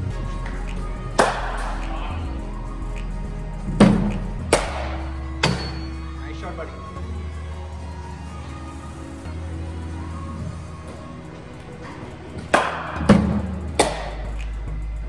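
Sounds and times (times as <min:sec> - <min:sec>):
music playing: 0:00.0 - 0:15.0.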